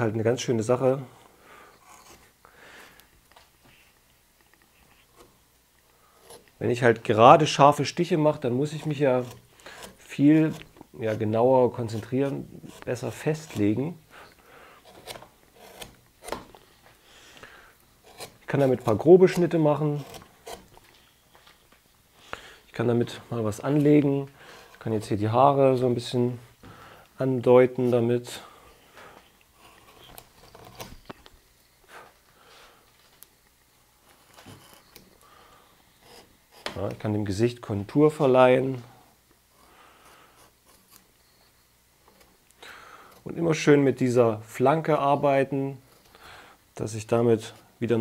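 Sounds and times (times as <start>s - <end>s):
gouge scraping into wood: 1.8s - 2.4s, 6.1s - 6.6s, 8.4s - 14.0s, 14.8s - 16.6s, 18.0s - 21.0s, 29.2s - 31.2s, 34.1s - 35.1s, 35.9s - 37.0s, 39.6s - 41.1s.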